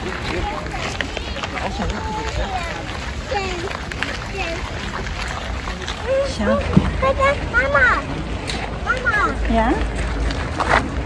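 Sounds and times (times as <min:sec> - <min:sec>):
indistinct talk of people: 0:00.0 - 0:11.0
rough outdoor background noise: 0:00.0 - 0:11.0.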